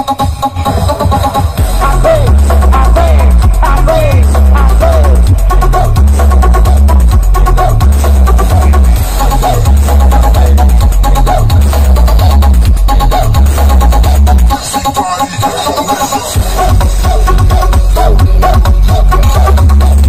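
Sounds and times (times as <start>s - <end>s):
loud electronic dance music: 0.0s - 20.0s.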